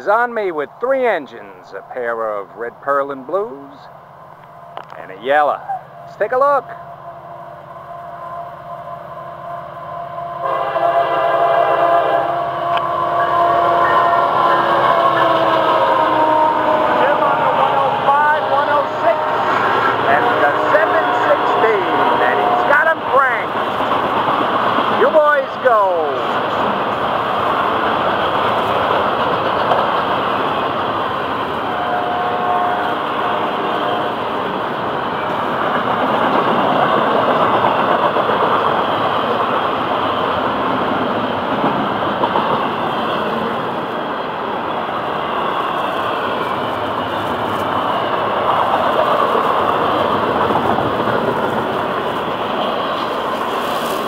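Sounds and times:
freight train wheels rumbling: 0.0s - 54.0s.

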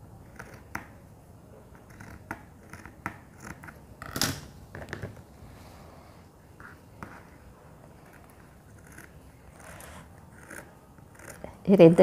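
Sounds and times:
scissors snipping fabric: 1.8s - 3.8s.

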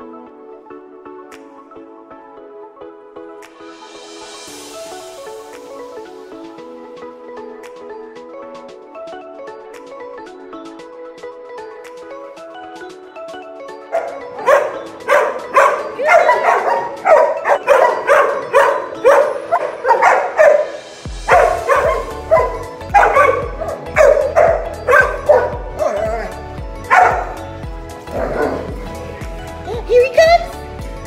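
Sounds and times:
background music: 0.0s - 31.0s
dog barking: 14.0s - 27.4s, 28.1s - 28.7s
deep bass beat: 21.1s - 31.0s.

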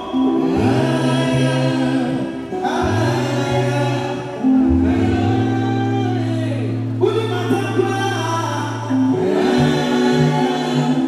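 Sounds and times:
group singing harmony: 0.0s - 5.9s, 9.0s - 11.0s
man singing gospel into microphone: 0.0s - 11.0s.

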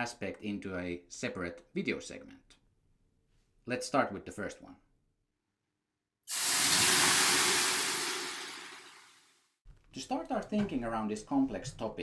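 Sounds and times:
water hissing on hot stones: 6.3s - 9.1s.

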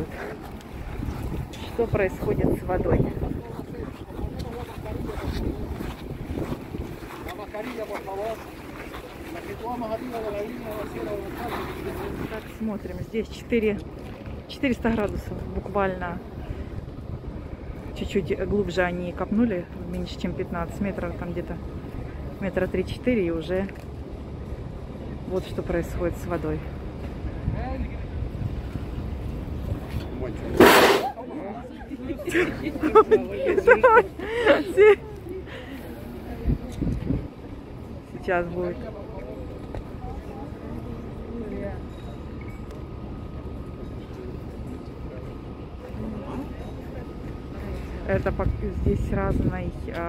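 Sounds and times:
wind buffeting microphone: 0.0s - 10.9s, 36.4s - 37.7s, 48.1s - 50.0s
crowd chattering: 0.0s - 28.4s, 29.6s - 50.0s
wind on microphone: 0.8s - 7.3s
faint murmur of onlookers: 29.9s - 49.3s
loud whoosh of steam: 30.6s - 31.2s.

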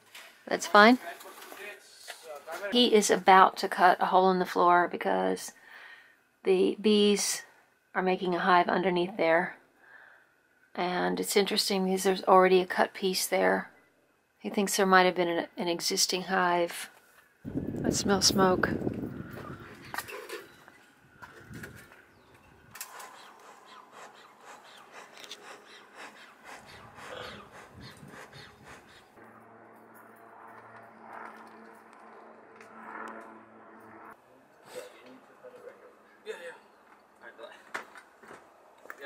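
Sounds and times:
steady low hum: 17.4s - 34.2s.

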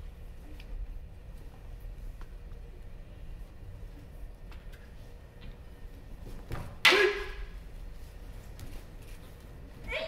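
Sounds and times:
martial arts shout: 6.9s - 7.5s.

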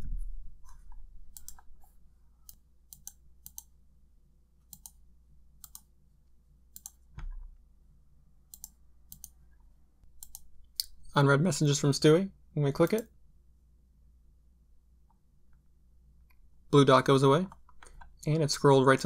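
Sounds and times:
mouse and keyboard clicks: 0.7s - 1.7s, 2.5s - 3.7s, 4.7s - 5.0s, 10.2s - 11.0s.

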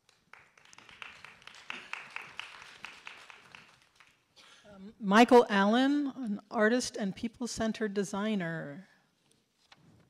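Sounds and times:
audience applause: 0.3s - 4.1s
speech: 4.7s - 8.9s.

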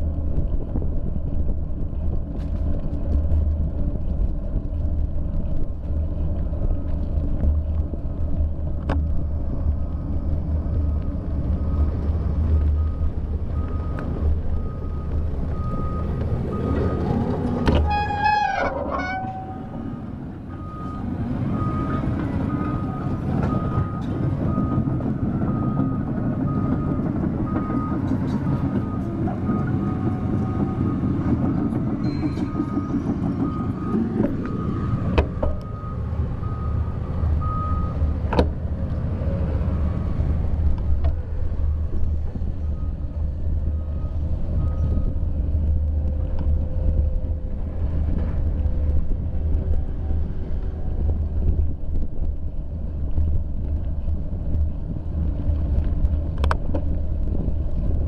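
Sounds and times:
wind rumble on microphone: 0.0s - 58.0s
short squeal: 17.6s - 20.0s, 32.0s - 33.0s.

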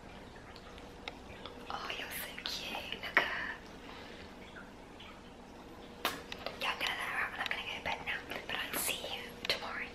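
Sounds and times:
woman whispering: 1.7s - 3.7s, 6.6s - 9.9s.

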